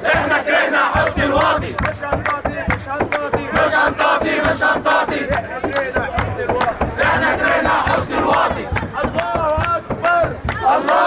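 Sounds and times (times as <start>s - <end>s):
crowd chanting: 0.0s - 11.0s.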